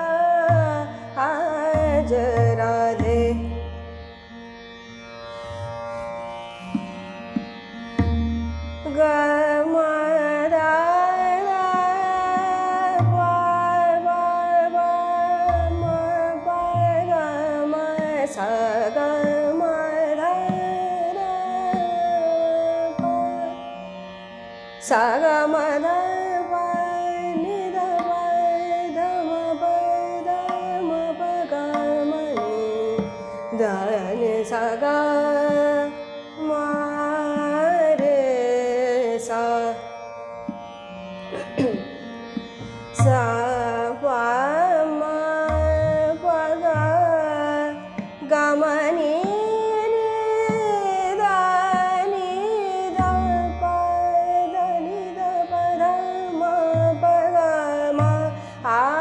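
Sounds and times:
woman singing: 0.0s - 3.7s, 8.8s - 23.6s, 24.8s - 39.9s, 41.4s - 42.1s, 42.9s - 59.0s
tabla strokes: 0.0s - 4.0s, 5.3s - 23.5s, 24.8s - 39.8s, 40.4s - 59.0s.

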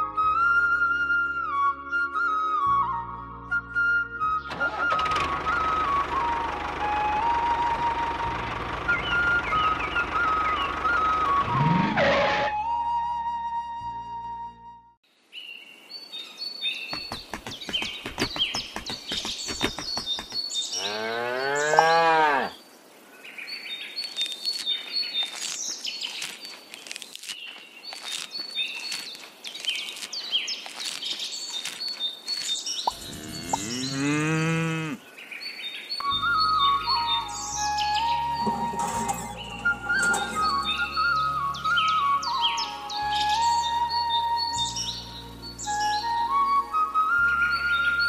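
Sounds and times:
music: 0.0s - 15.0s, 36.0s - 48.0s
birds chirping: 15.4s - 46.3s
cow mooing: 20.8s - 22.6s, 33.0s - 35.0s.

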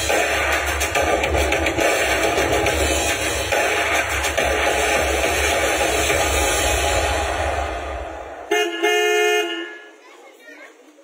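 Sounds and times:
car horn honking: 8.5s - 10.0s.

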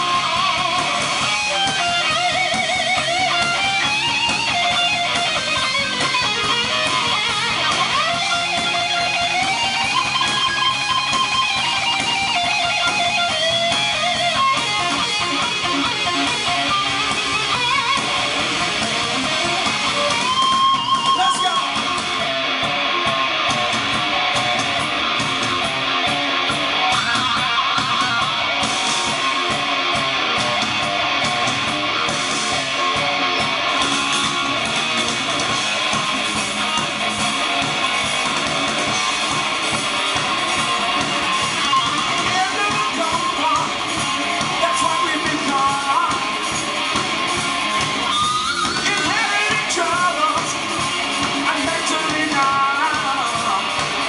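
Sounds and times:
bass and drums: 0.0s - 54.0s
electric guitar lead lines: 0.0s - 54.0s.

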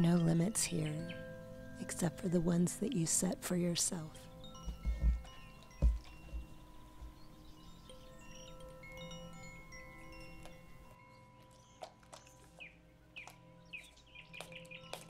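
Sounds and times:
relaxation music with wind chimes: 0.0s - 15.0s
bird-like chirps: 11.1s - 15.0s.

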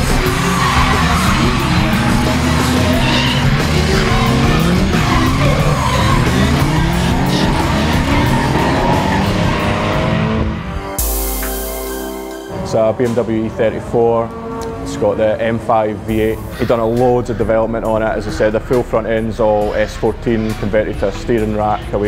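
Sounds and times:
car engines revving: 0.0s - 11.0s, 12.5s - 22.0s
tyres skidding and squealing: 0.0s - 11.0s, 12.4s - 22.0s
loud music: 0.0s - 14.0s.

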